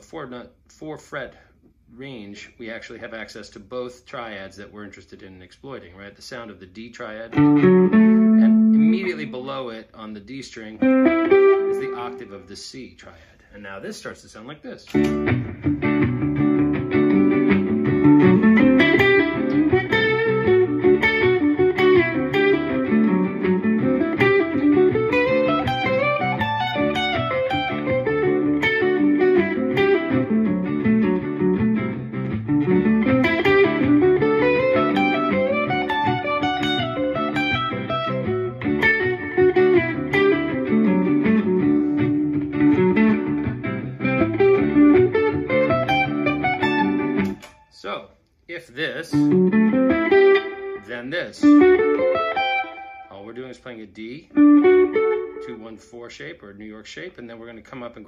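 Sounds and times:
electric guitar lead line: 7.3 - 9.6, 10.8 - 12.4, 14.9 - 47.7, 49.1 - 53.2, 54.3 - 55.6.

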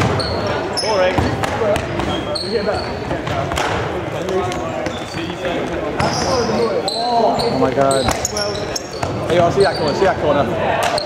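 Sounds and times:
shoes squeaking on wooden floor: 0.0 - 3.5, 4.2 - 11.0
voices in hall: 0.0 - 11.0.

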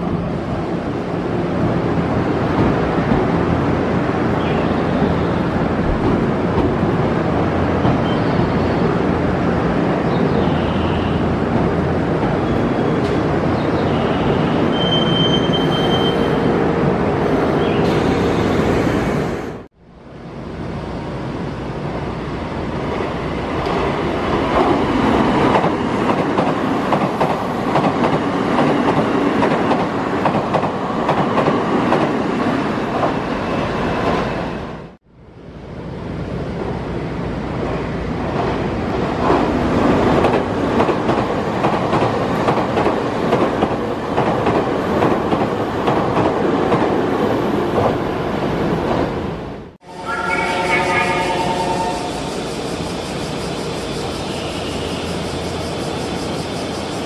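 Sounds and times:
train wheels rumbling on rails: 0.0 - 19.6, 21.3 - 34.8, 35.8 - 49.6.

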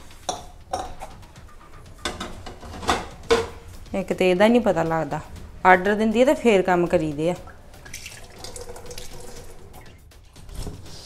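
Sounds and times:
tap water running into sink: 7.4 - 9.9.

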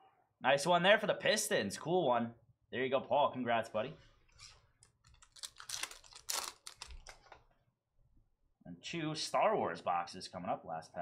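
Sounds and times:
trading cards clicking and rustling: 4.8 - 7.4.

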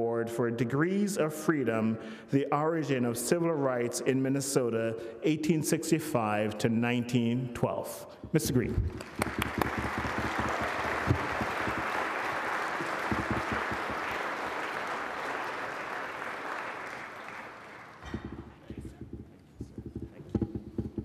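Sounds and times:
audience applause: 8.9 - 19.0.

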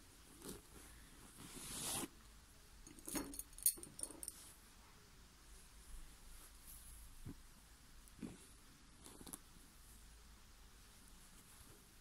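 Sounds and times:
cloth rustle: 0.1 - 2.2, 5.8 - 12.0.

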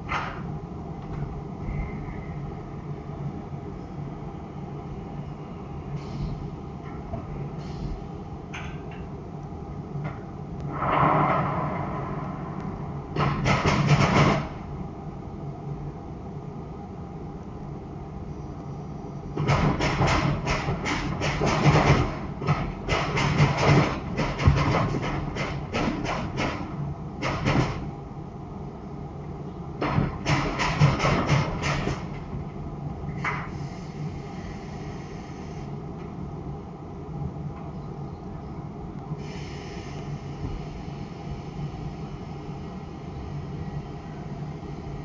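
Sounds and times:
steady low hum: 0.0 - 45.0
car underbody knocking and rattling: 13.2 - 14.6, 19.4 - 27.9, 29.8 - 32.3.

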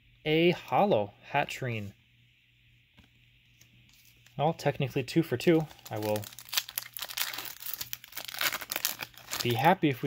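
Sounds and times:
foil wrapper crinkling and tearing: 5.6 - 9.8.

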